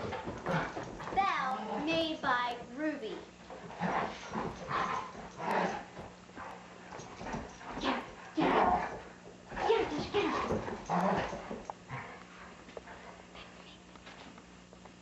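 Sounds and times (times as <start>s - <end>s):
dogs barking and yelping: 3.7s - 9.0s.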